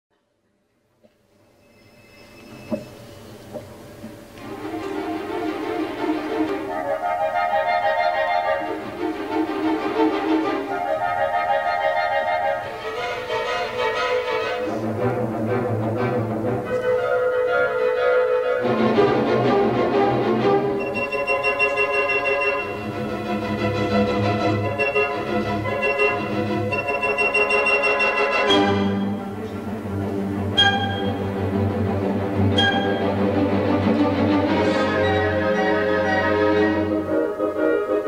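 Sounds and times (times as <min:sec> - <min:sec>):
orchestra playing slow classical music: 0:01.6 - 0:38.0.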